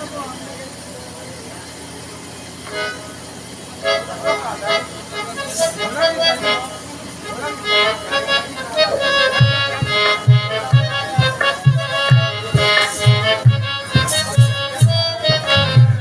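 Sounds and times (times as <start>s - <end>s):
voices in room: 0.0s - 16.0s
harmonium playing short notes: 2.6s - 16.0s.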